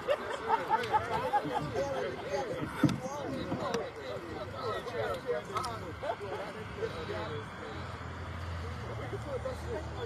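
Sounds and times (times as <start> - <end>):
group chatter: 0.0 - 10.0.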